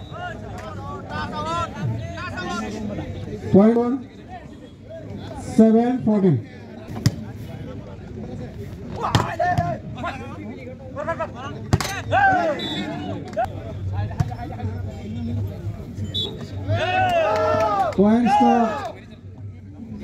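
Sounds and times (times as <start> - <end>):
spectators shouting: 12.0 - 13.2, 16.6 - 19.0.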